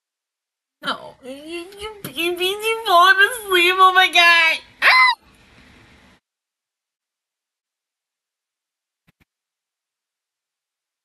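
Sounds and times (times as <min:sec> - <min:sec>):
high voice squeal: 0:04.8 - 0:05.2.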